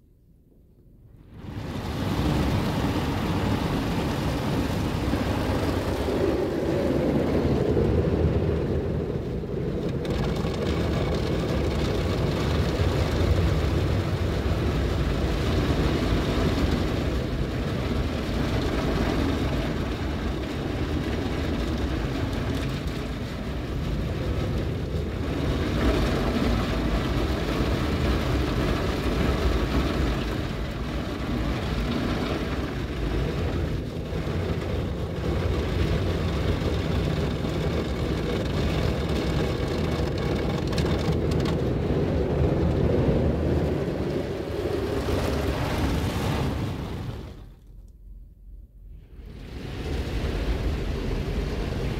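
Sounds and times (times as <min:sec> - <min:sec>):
car wash brushes and water spray: 0:01.3 - 0:47.7.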